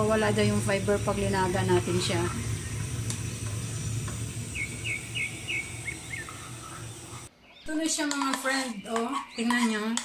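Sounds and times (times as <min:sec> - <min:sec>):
steady low hum: 0:00.0 - 0:07.3
small bird chirping: 0:04.5 - 0:09.7.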